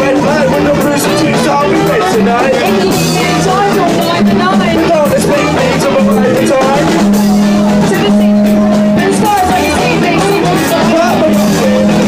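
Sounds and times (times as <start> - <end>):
live rap-funk band music: 0.0 - 12.0.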